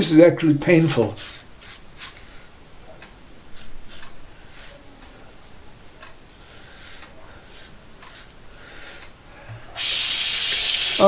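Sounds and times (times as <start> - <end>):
razor scraping through stubble: 1.1 - 2.2, 3.5 - 4.8, 6.3 - 8.4
tap water running: 9.8 - 11.0.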